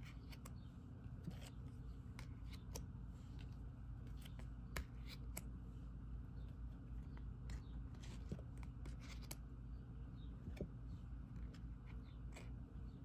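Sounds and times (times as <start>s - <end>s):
cards clicking and sliding: 0.0s - 0.6s, 1.2s - 5.5s, 7.4s - 9.4s
low steady hum: 0.0s - 13.0s.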